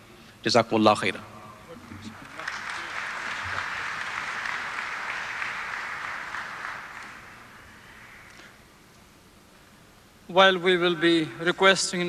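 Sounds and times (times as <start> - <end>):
audience applauding: 1.7 - 8.6.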